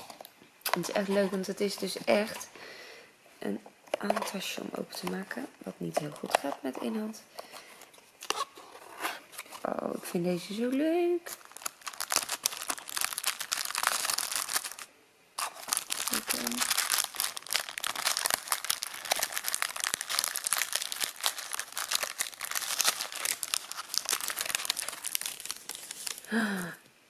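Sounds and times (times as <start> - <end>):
paper packaging crinkling: 10.6 - 26.8.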